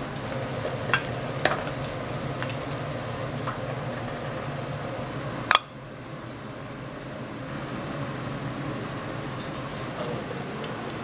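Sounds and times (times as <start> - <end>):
rice sizzling in a pan: 0.0 - 11.0.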